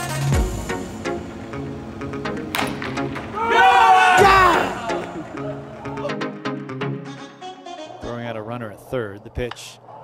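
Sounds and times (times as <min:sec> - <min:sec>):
background music: 0:00.0 - 0:08.5
baseball bat hitting ball: 0:02.5 - 0:03.3
excited shout: 0:03.3 - 0:06.2.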